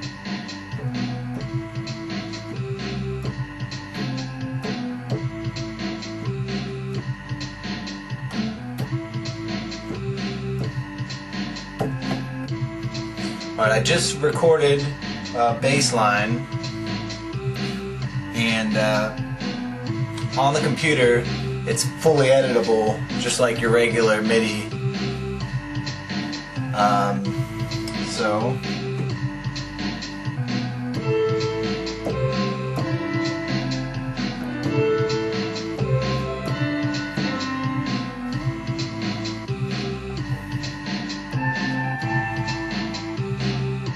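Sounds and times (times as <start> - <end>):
electronic drum loop: 0.0 - 43.9
keyboard held notes: 0.0 - 43.9
synth bass line: 0.0 - 43.9.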